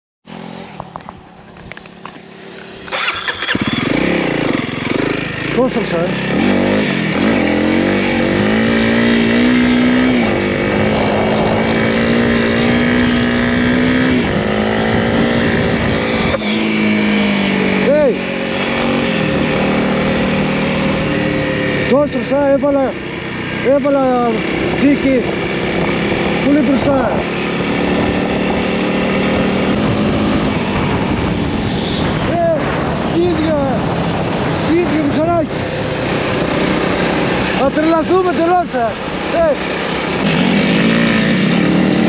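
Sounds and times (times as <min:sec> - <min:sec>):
motorcycle revving and pulling away: 0:00.3 - 0:42.0
motorcycle engine idling: 0:00.8 - 0:06.2
wind noise: 0:06.3 - 0:17.8, 0:18.4 - 0:21.8, 0:24.3 - 0:38.3.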